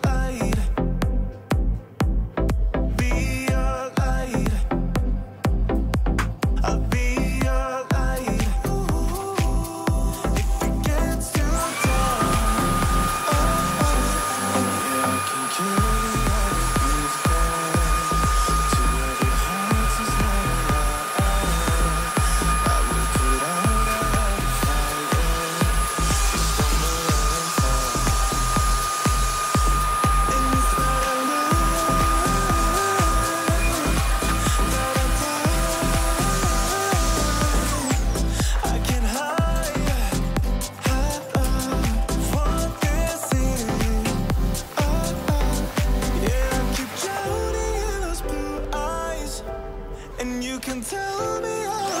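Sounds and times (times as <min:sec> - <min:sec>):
pop music with steady beat: 0:00.0 - 0:52.0
vacuum cleaner motor whine: 0:09.2 - 0:48.8.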